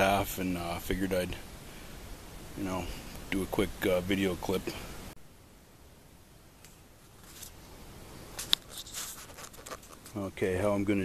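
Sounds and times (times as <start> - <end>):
camera handling rustling: 8.4 - 10.2.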